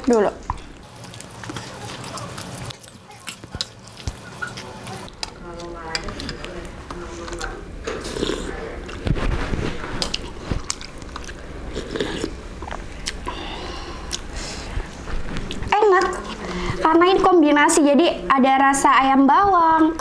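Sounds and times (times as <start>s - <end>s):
chewing: 0.0s - 16.6s
noodles slurped: 10.0s - 13.3s.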